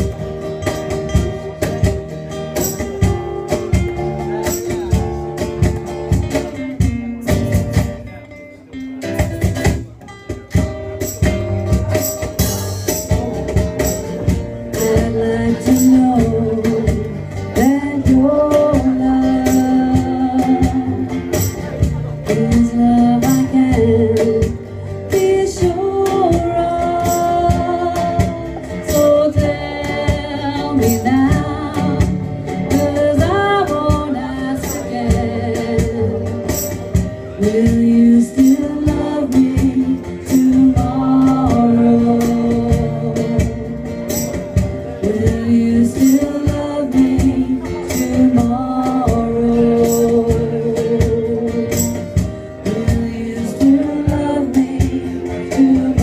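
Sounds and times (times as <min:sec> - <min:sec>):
percussive beat: 0:00.0 - 0:08.2, 0:09.0 - 0:56.0
acoustic guitar: 0:00.0 - 0:56.0
plucked double bass: 0:00.0 - 0:56.0
woman singing: 0:14.6 - 0:21.4, 0:22.2 - 0:44.0, 0:44.9 - 0:56.0.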